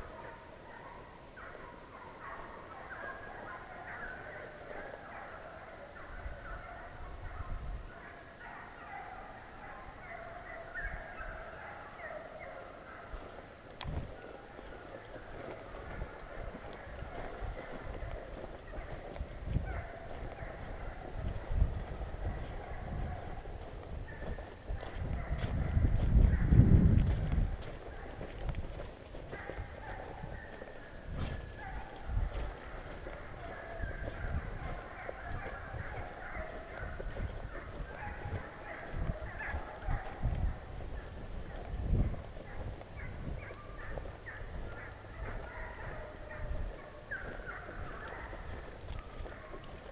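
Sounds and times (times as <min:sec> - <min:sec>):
footsteps on muddy trail: 0:00.0 - 0:49.9
hounds baying: 0:00.0 - 0:49.9.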